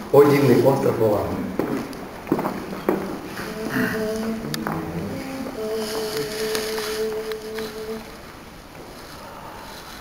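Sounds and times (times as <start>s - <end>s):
men humming a chord: 3.1s - 8.5s.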